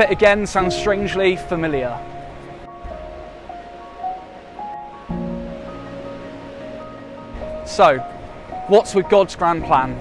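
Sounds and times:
slow background music: 0.0s - 10.0s
surf washing: 0.0s - 10.0s.

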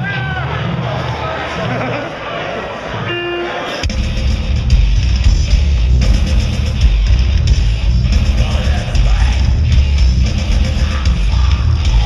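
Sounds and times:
metal band playing: 3.0s - 12.0s.

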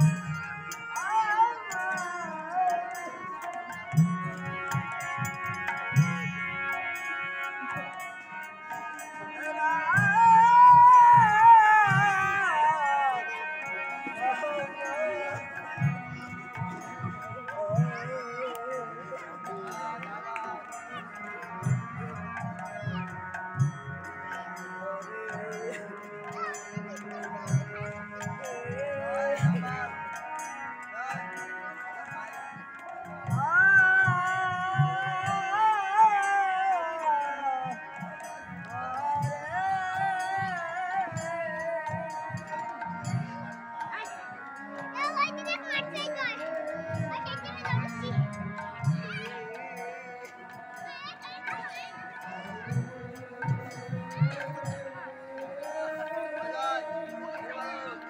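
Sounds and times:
harmonium holding a chord: 0.0s - 58.0s.

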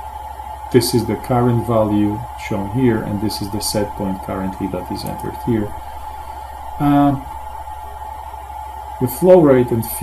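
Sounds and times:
faint thin steady tone: 0.0s - 10.0s
steady low hum: 0.0s - 10.0s
man saying uh: 0.8s - 5.8s, 6.8s - 7.3s, 9.0s - 10.0s.

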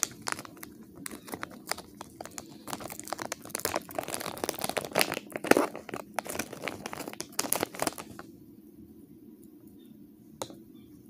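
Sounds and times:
foil packaging crinkling: 0.0s - 8.3s.

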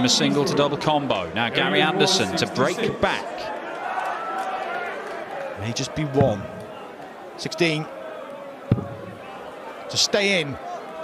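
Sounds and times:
murmur of crowd: 0.0s - 11.0s
dart striking dartboard: 8.7s - 9.2s.

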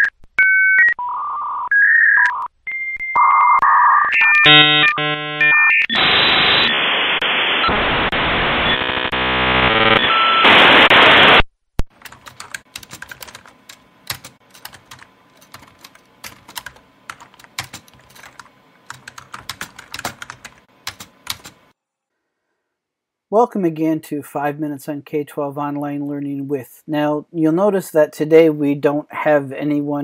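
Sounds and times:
electronic tones and hiss: 3.6s - 11.4s
typing on computer keyboard: 11.9s - 21.6s.

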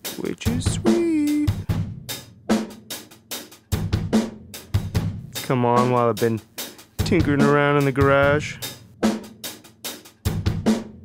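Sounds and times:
drum kit steady beat: 0.0s - 11.0s.

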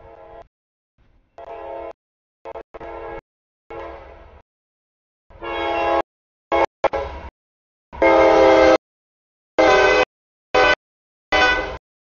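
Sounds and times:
locomotive air horn blasts: 0.0s - 0.5s, 1.4s - 4.4s, 5.3s - 7.3s, 8.0s - 8.8s, 9.6s - 11.8s.

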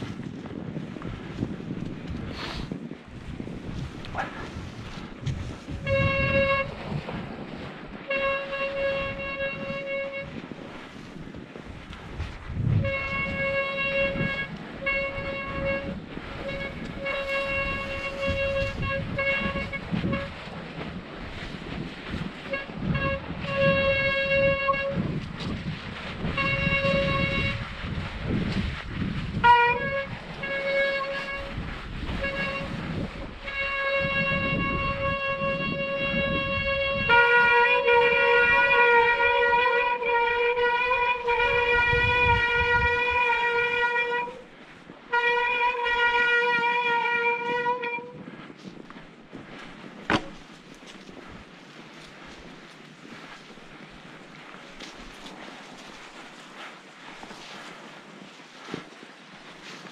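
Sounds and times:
tyres rumbling on snow: 0.0s - 59.9s.

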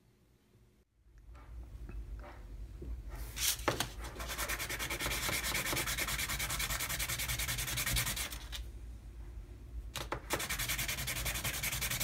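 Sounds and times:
wood rubbed on sandpaper: 10.4s - 12.0s.

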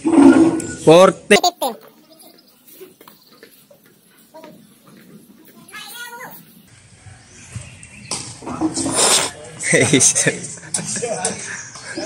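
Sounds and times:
faint distant voices: 1.0s - 12.0s.

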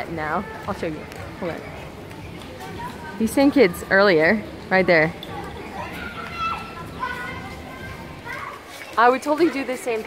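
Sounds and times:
background murmur: 0.0s - 10.0s
children screaming and playing: 0.0s - 10.0s.

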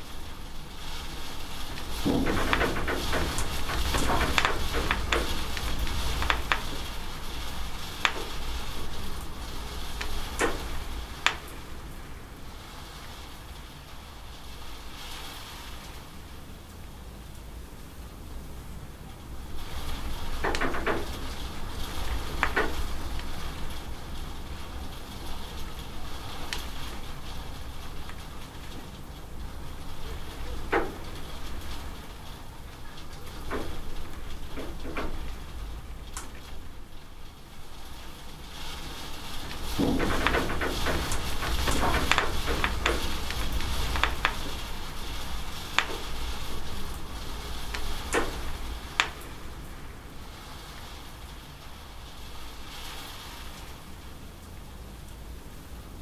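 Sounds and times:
rain hiss: 0.0s - 56.0s.

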